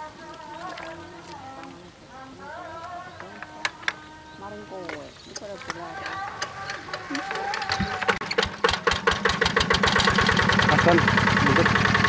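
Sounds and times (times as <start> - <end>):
diesel engine starting: 6.2 - 12.0.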